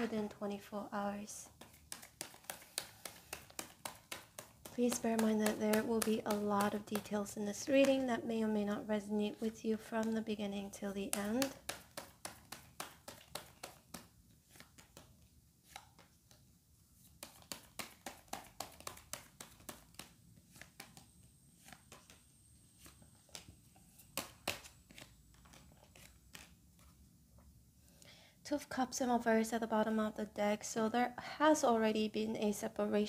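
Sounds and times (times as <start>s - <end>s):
cards clicking on wooden table: 1.5s - 8.1s, 11.1s - 16.4s, 17.1s - 27.0s.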